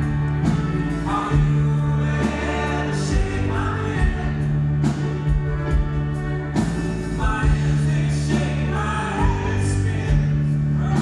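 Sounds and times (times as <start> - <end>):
people singing: 0.0 - 5.9, 6.6 - 11.0
live folk-rock band playing: 0.0 - 11.0.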